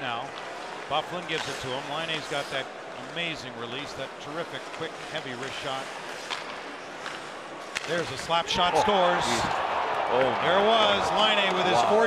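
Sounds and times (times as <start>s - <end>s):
hockey sticks clacking on puck: 0.3s - 2.5s, 3.9s - 8.4s.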